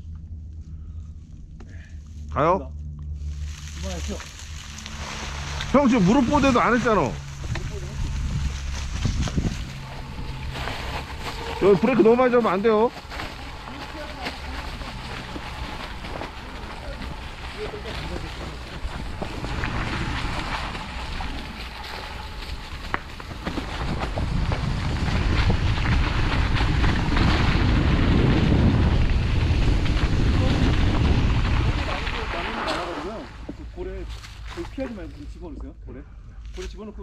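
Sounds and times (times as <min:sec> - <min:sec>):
bike rolling over dry leaves: 0:03.2 - 0:35.4
wind buffeting microphone: 0:03.4 - 0:33.4
bike rattles and clicks: 0:04.0 - 0:35.1.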